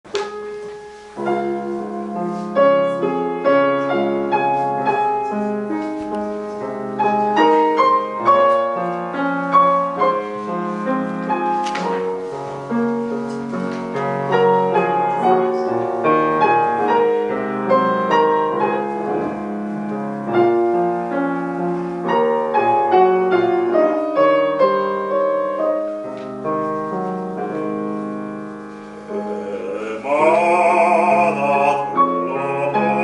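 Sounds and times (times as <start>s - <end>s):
grand piano playing: 0.0s - 33.0s.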